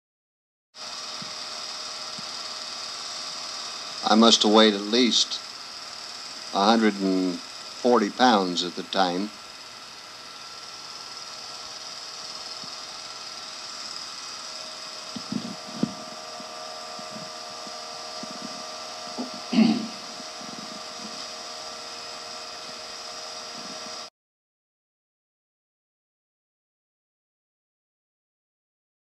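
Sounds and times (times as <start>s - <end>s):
motor-like whine: 0.8s - 24.1s
tape hum and hiss: 0.8s - 24.1s.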